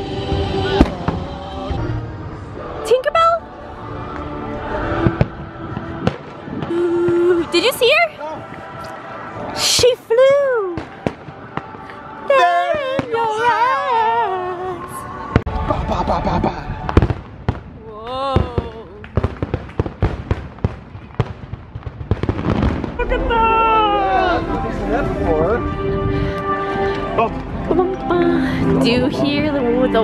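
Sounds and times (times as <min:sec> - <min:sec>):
fireworks bangs and crackles: 0:00.0 - 0:01.4, 0:03.9 - 0:09.5, 0:10.2 - 0:13.8, 0:14.8 - 0:26.1.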